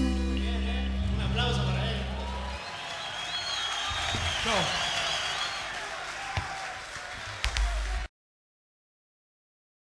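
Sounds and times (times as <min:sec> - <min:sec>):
audience applauding and cheering: 0:00.8 - 0:08.1.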